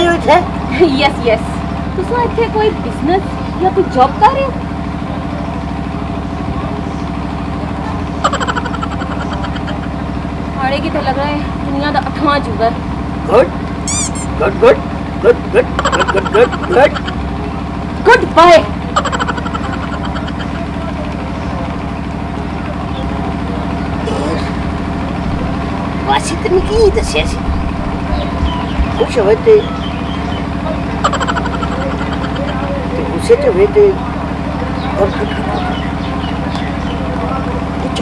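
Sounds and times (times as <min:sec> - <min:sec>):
low engine hum: 0:00.0 - 0:38.0
burst of laughter: 0:08.2 - 0:10.0, 0:15.5 - 0:17.2, 0:18.9 - 0:20.6, 0:31.0 - 0:32.7.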